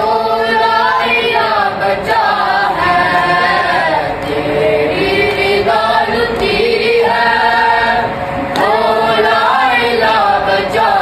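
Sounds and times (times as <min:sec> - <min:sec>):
men and boys chanting: 0:00.0 - 0:11.0.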